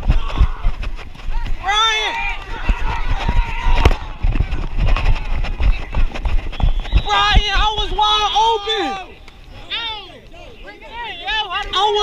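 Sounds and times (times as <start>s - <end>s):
players shouting: 0.0s - 6.2s, 6.8s - 12.0s.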